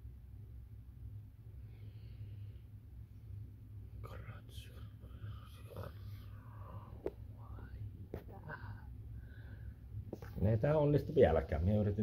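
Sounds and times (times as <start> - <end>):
steady low hum: 0.0 - 12.0
man whispering: 3.9 - 8.8.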